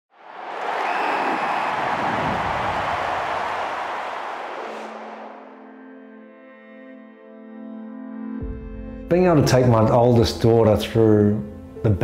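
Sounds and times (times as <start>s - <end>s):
rush of noise: 0.7s - 5.8s.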